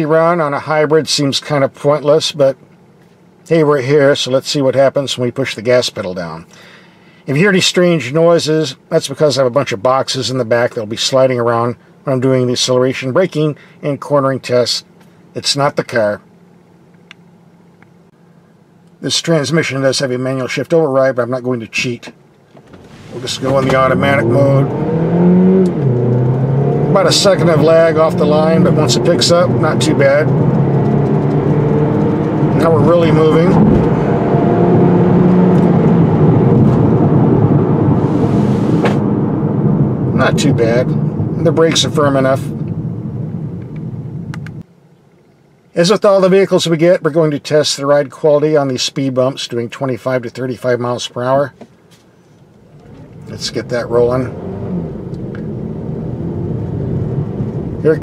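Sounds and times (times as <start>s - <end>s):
car cabin hum: 22.4s - 44.6s, 52.6s - 58.0s.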